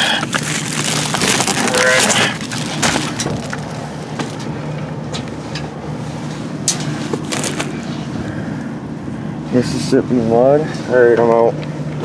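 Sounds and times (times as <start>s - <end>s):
plastic bags rustling: 0.0s - 4.5s, 6.9s - 7.9s
low steady hum: 0.0s - 12.0s.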